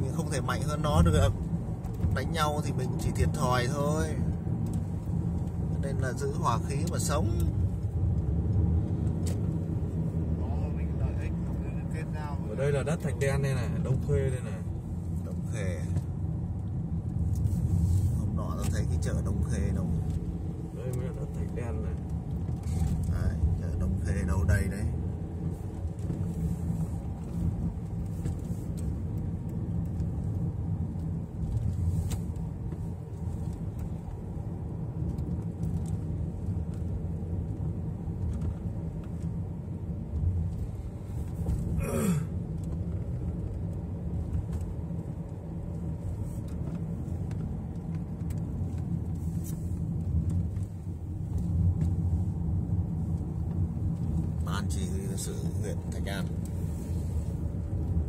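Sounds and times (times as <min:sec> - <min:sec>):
car engine and tyre rumble: 0:00.0 - 0:58.0.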